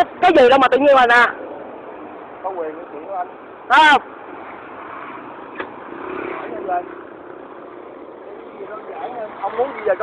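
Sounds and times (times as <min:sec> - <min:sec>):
vehicle engine passing: 0:04.2 - 0:10.0.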